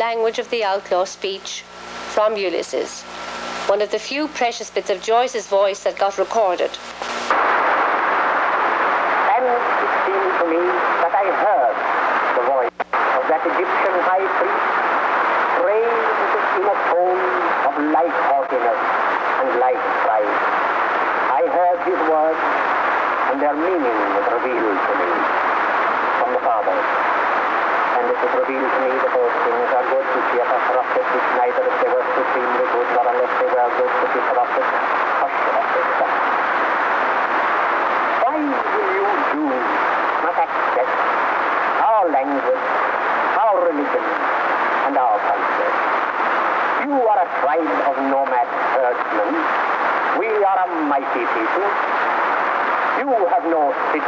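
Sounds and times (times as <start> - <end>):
indistinct talking: 3.6 - 52.0
steady rushing noise: 6.8 - 54.0.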